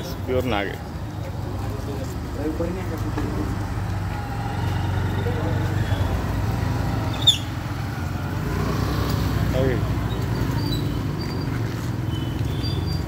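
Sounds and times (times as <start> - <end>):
vehicle engine rumbling: 0.0 - 13.0.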